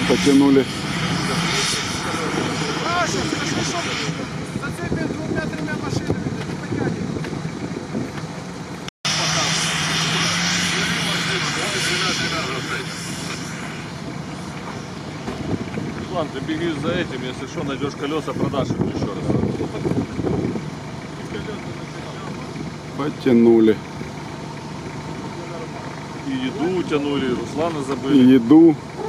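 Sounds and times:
off-road vehicle engines droning: 0.0 - 29.0.

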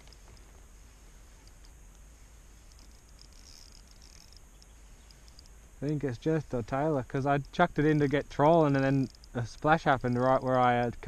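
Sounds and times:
soft high ticks: 0.0 - 11.0
man talking: 5.8 - 11.0.

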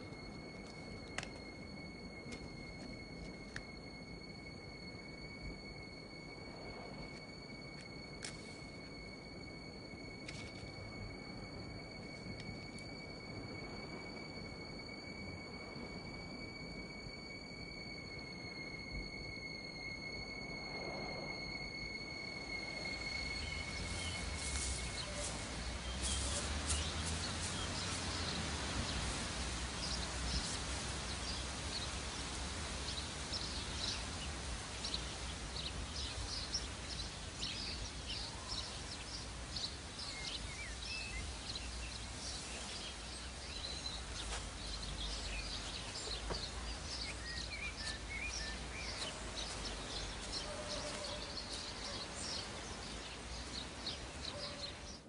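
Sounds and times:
birds chirping: 0.0 - 55.0
low rumble and hiss: 0.0 - 55.0.

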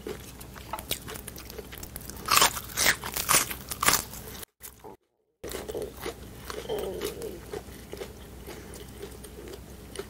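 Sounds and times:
crunchy chewing: 0.0 - 10.0.

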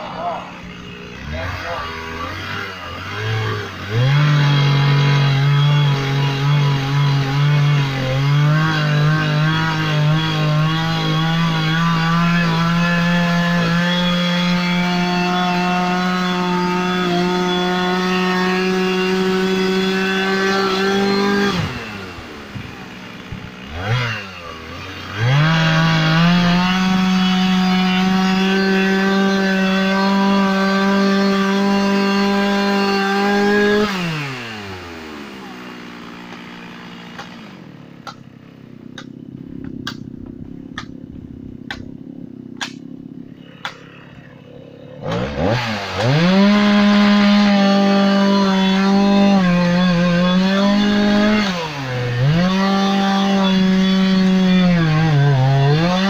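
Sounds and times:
chainsaw cutting wood: 0.0 - 56.0.

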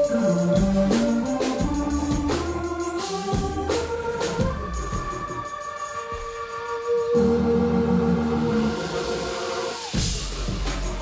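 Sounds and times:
lower group of notes: 0.0 - 11.0.

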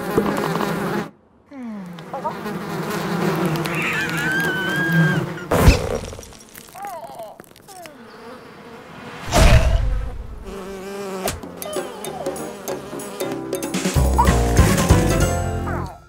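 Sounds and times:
cartoon bees buzzing: 0.0 - 1.2, 1.9 - 6.1, 7.4 - 16.0
loud hit: 9.2 - 10.5.

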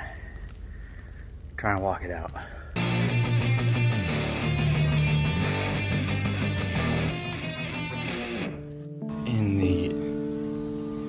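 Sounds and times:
strummed guitar music: 2.8 - 11.0.

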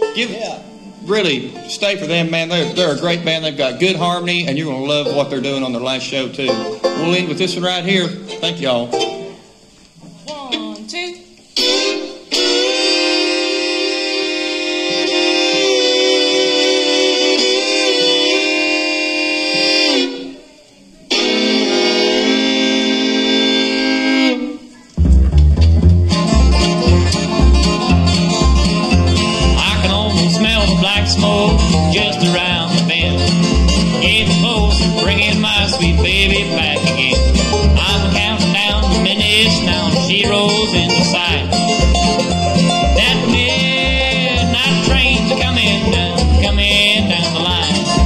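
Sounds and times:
upright bass: 0.0 - 9.5, 24.3 - 48.0
fiddles playing held notes: 0.0 - 9.7, 10.3 - 20.5, 21.1 - 48.0
banjo: 0.0 - 10.8, 11.4 - 20.4, 21.0 - 48.0
guitar: 0.0 - 48.0.

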